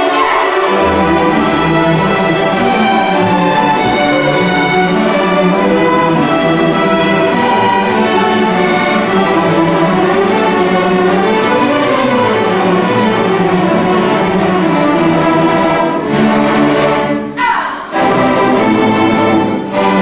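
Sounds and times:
string orchestra playing: 0.0 - 20.0.

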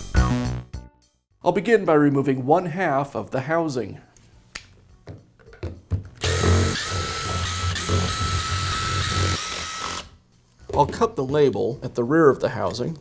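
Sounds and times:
drill clicks: 6.2 - 10.1
drill motor whining: 6.2 - 10.1.

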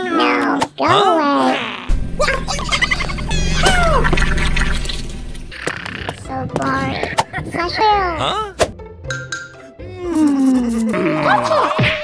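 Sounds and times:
squeaky cartoon cry: 2.5 - 4.0
background music: 5.5 - 12.0.

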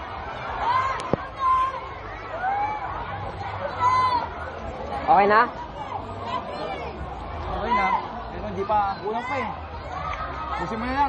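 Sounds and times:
group of people chattering: 0.0 - 11.0.

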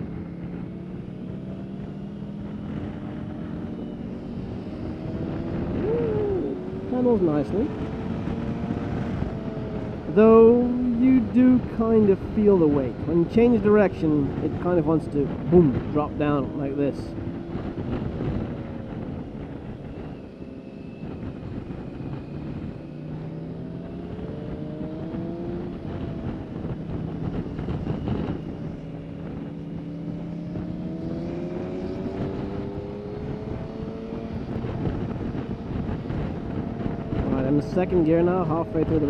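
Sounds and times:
motorcycle engine revving: 0.0 - 11.8, 17.1 - 39.0
wind noise on microphone: 0.0 - 39.0.

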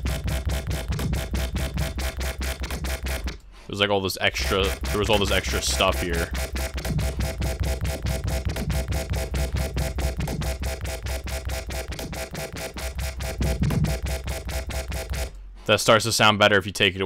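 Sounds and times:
pulsing dubstep bass: 0.0 - 3.4, 4.3 - 15.3.

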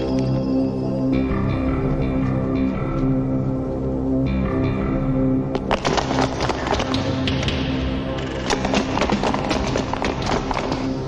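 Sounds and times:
film score music: 0.0 - 11.0
footsteps running down stairs: 5.7 - 11.0.

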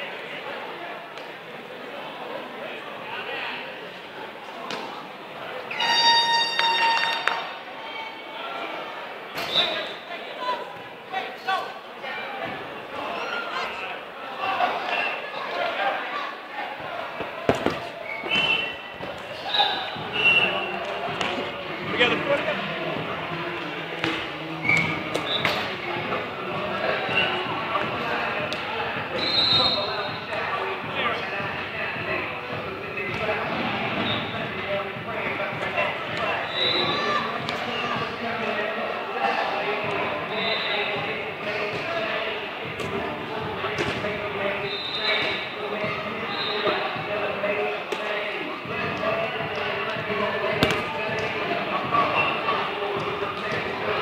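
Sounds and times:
players shouting in echoing hall: 5.6 - 54.0
short shrill high note: 5.7 - 7.3
dodgeballs thudding: 16.8 - 22.3, 23.9 - 38.2, 42.6 - 44.4, 48.6 - 52.1.

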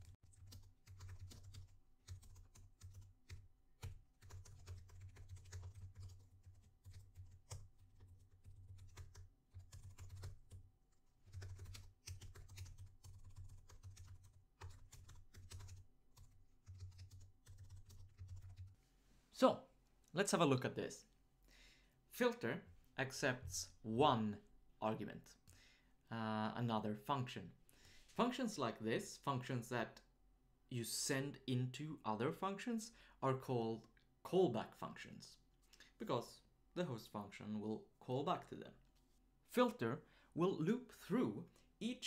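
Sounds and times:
typing on computer keyboard: 0.0 - 18.7.

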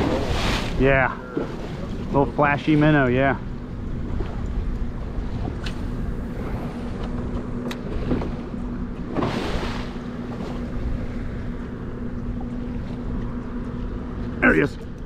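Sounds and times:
water splash: 0.0 - 2.1, 9.1 - 10.6
boat motor humming: 0.0 - 15.0
water slapping hull: 0.0 - 15.0
wind rumbling on microphone: 3.4 - 14.2.

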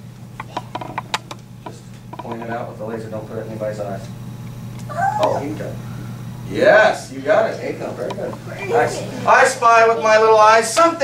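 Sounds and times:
steady low hum: 0.0 - 11.0
light clicks and knocks: 0.4 - 2.5.

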